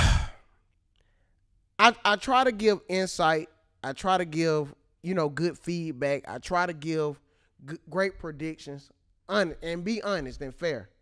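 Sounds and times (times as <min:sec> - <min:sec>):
man sighing: 0:00.0 - 0:00.4.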